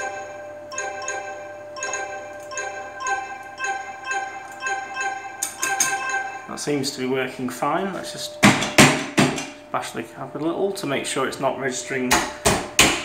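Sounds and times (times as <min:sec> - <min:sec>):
electronic chime notes: 0:00.0 - 0:07.2.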